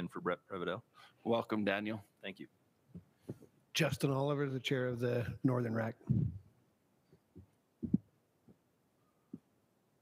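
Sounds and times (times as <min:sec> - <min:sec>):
soft low thumps: 0:06.0 - 0:06.5, 0:07.4 - 0:08.1.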